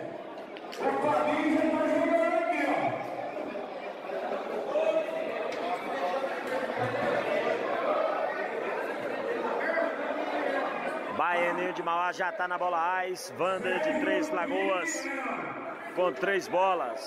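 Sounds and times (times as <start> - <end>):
indistinct chatter in a hall: 0.0 - 17.0.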